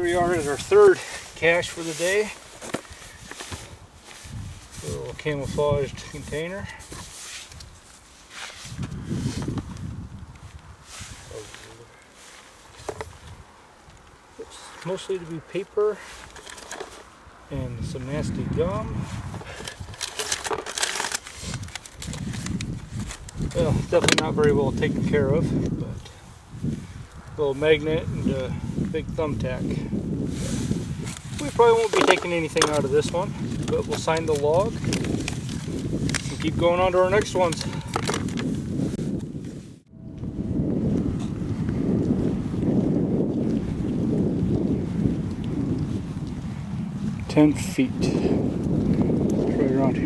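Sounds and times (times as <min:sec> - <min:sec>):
paper and plastic bag crinkling: 0:00.0 - 0:13.4, 0:16.0 - 0:17.2, 0:19.0 - 0:25.1, 0:30.4 - 0:38.6
wind buffeting microphone: 0:00.0 - 0:50.0.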